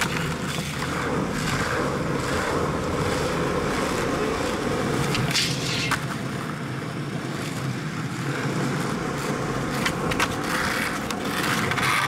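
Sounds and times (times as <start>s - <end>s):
skateboard wheels rolling on asphalt: 0.0s - 12.0s.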